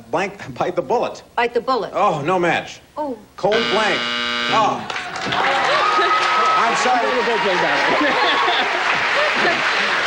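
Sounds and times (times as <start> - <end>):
game show buzzer: 3.4 - 5.0
studio audience applause: 4.6 - 10.0.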